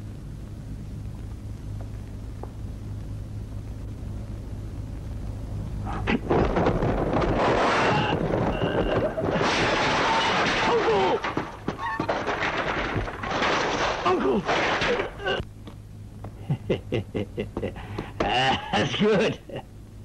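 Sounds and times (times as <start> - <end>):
low hum: 0.0 - 20.0
loud crash: 6.1 - 15.3
baskets and cart smashing: 6.1 - 15.4.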